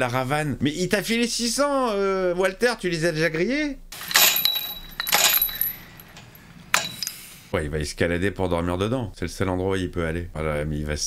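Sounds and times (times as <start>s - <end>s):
chain and padlock rattling: 4.0s - 7.3s
faint metallic ringing: 4.0s - 7.4s.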